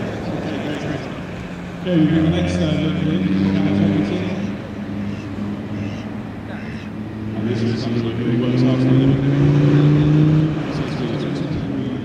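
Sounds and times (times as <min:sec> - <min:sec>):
diesel engine passing: 0:00.0 - 0:12.0.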